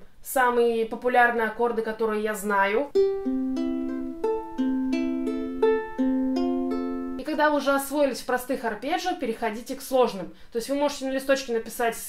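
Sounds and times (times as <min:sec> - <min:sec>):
ukulele fingerpicked arpeggio: 0:02.8 - 0:07.4.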